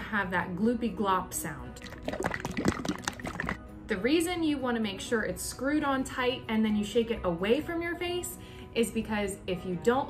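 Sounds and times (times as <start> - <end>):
glaze sloshing in shaken jar: 1.8 - 3.6.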